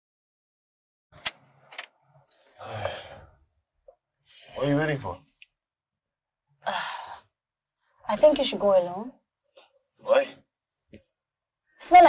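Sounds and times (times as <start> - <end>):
person sighing: 2.6 - 3.2.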